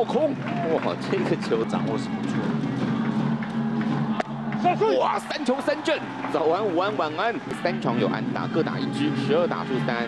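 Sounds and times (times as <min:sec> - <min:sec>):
crowd cheering: 0:00.0 - 0:10.0
stadium music: 0:00.0 - 0:10.0.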